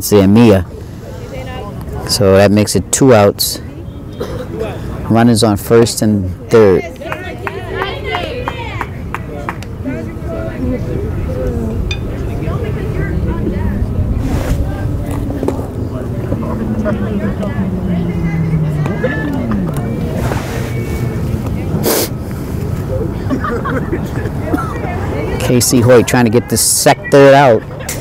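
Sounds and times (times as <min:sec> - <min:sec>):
people calling and chattering: 0:00.0 - 0:28.0
wind rumble on microphone: 0:10.2 - 0:22.7.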